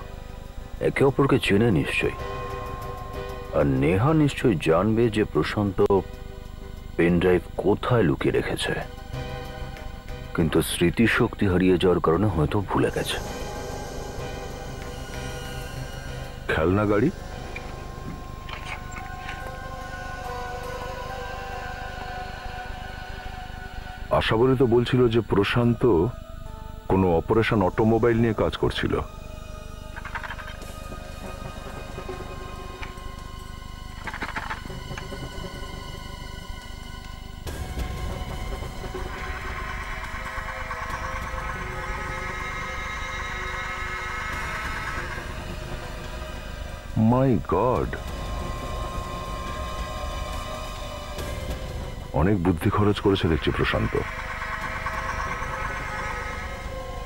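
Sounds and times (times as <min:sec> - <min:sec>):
drama score held tones: 0:00.0 - 0:57.0
synthesizer drone: 0:00.0 - 0:57.0.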